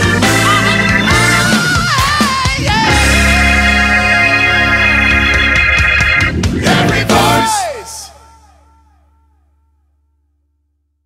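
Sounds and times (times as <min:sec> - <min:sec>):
swooping electronic echo: 0:00.2 - 0:08.6.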